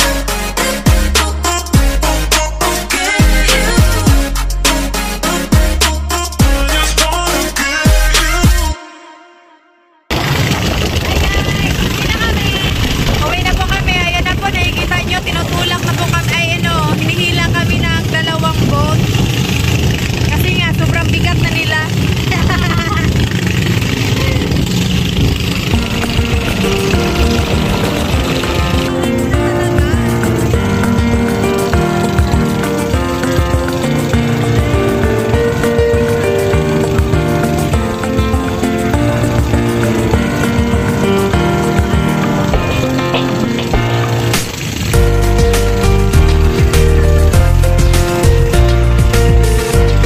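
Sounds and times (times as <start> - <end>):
boat engine running: 0.0 - 8.8, 10.1 - 50.0
background music: 0.0 - 9.9, 25.6 - 50.0
water noise: 10.1 - 50.0
wind: 10.1 - 50.0
voices: 11.0 - 19.2, 20.0 - 33.9.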